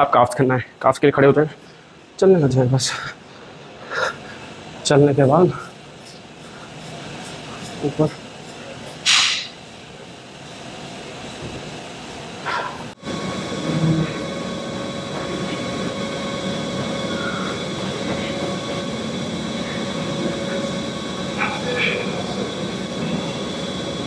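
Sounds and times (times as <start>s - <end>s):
air conditioning hum: 0.0s - 24.0s
brief hiss: 9.0s - 9.6s.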